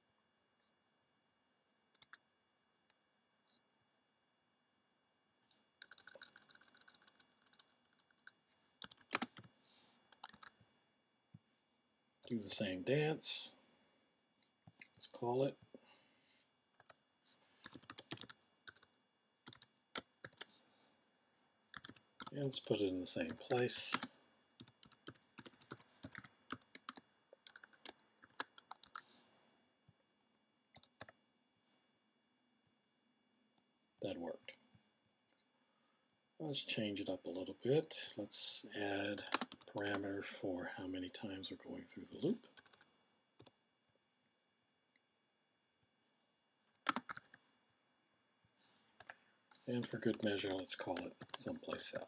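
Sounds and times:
typing on computer keyboard: 5.8s - 9.5s, 10.1s - 10.6s, 17.6s - 18.9s, 19.5s - 20.5s, 21.7s - 22.3s, 23.5s - 29.0s, 39.2s - 40.0s, 42.6s - 43.5s, 46.8s - 47.4s, 49.0s - 51.8s.

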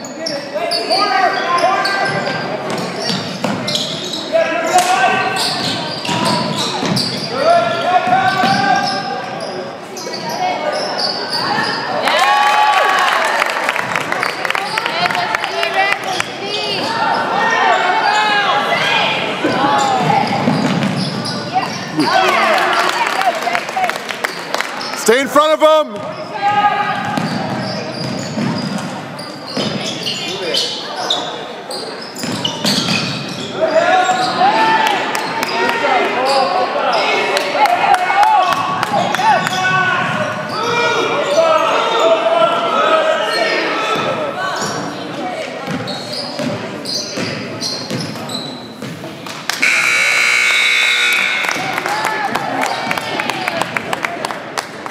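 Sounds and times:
people shouting in gym: 4.3s - 9.2s, 16.5s - 20.5s, 33.5s - 45.4s
basketball bouncing on hardwood floor: 27.0s - 28.8s
scoreboard horn blast: 49.6s - 51.9s.

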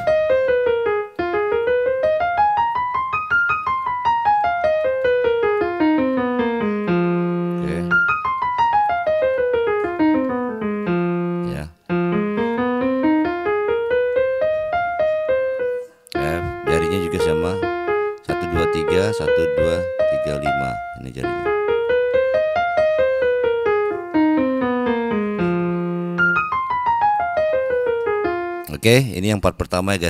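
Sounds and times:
piano playing blues scale: 0.0s - 29.1s.

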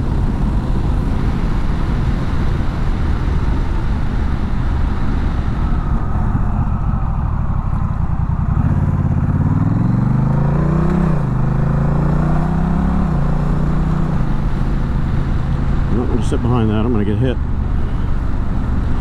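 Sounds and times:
wind rumble: 0.0s - 19.0s.

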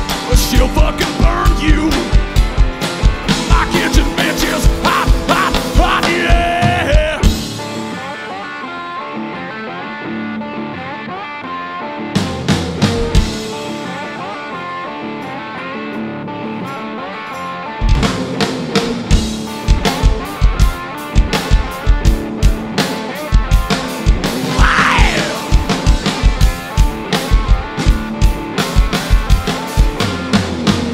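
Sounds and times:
drum kit with cymbals: 0.0s - 8.2s, 12.2s - 14.1s, 17.8s - 30.9s
electric guitar: 0.0s - 30.9s.

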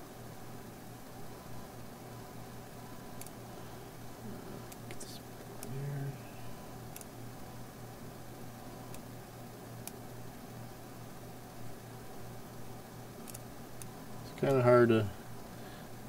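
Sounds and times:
low electrical hum: 0.0s - 16.0s
computer mouse clicks: 3.2s - 3.4s, 6.9s - 7.1s, 8.9s - 9.1s, 13.2s - 13.9s.

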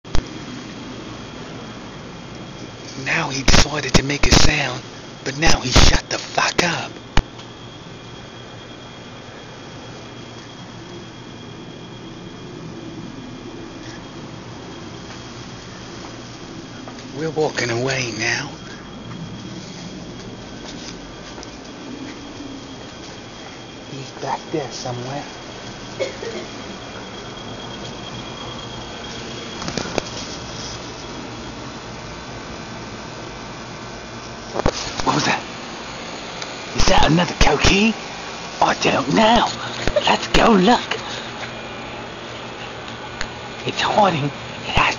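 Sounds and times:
even night hiss: 0.1s - 44.9s
insect high-pitched trill: 0.1s - 44.9s.

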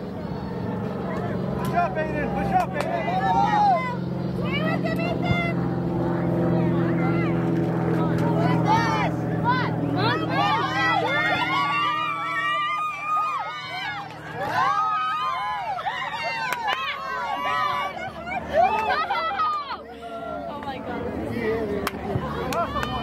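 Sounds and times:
low engine hum: 0.0s - 23.0s
distant shouts of players: 0.2s - 5.6s, 6.5s - 20.8s.

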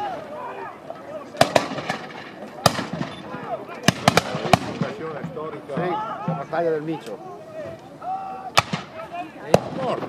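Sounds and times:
musket shots: 1.4s - 3.2s, 3.8s - 5.0s.

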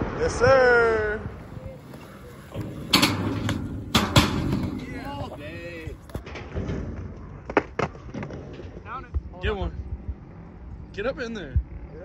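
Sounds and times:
skateboard wheels rolling on concrete: 0.0s - 10.5s
voices: 0.2s - 6.2s
skateboard clacks: 1.4s - 6.2s.

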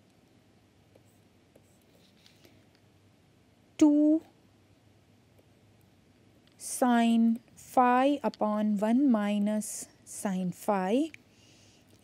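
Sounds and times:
stylus scratching on tablet: 1.0s - 2.5s.

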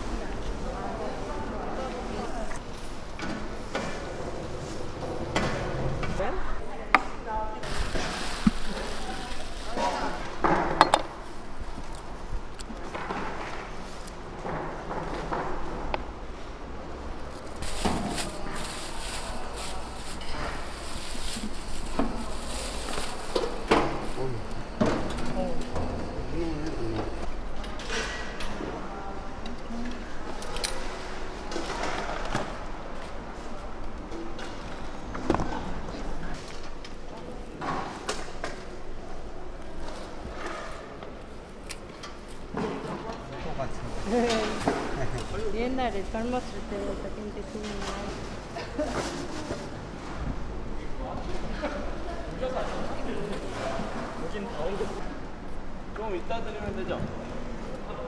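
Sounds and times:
background chatter: 0.0s - 14.4s, 15.5s - 58.0s.

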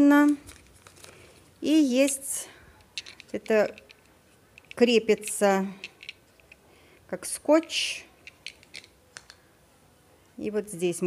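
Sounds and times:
plastic mount clicking: 8.2s - 9.4s.

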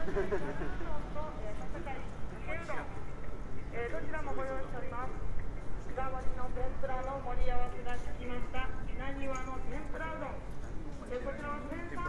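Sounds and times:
low street rumble: 0.0s - 12.0s
passersby talking: 0.0s - 12.0s.

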